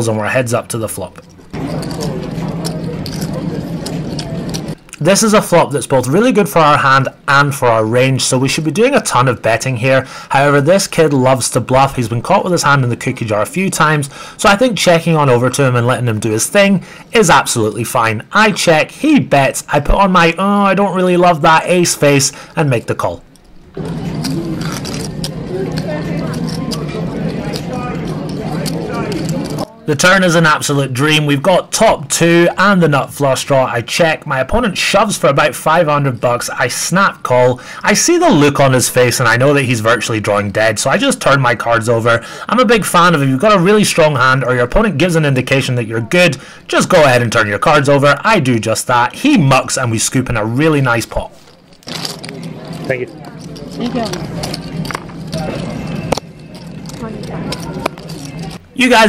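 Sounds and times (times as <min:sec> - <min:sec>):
steady low hum: 0:00.0 - 0:21.0, 0:21.6 - 0:58.9
background chatter: 0:00.0 - 0:59.0
background table chatter: 0:01.0 - 0:05.1, 0:22.4 - 0:31.6, 0:43.0 - 0:59.0
poker chips clicking: 0:51.7 - 0:58.6.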